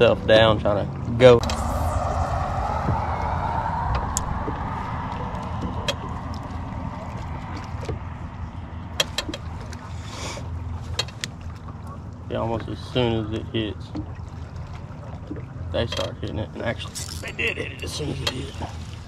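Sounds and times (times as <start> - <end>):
faint tone falling in pitch: 1.4 - 8.1
steady low rumble: 1.4 - 9.8
water lapping against boat hull: 9.0 - 19.0
man talking: 16.2 - 18.6.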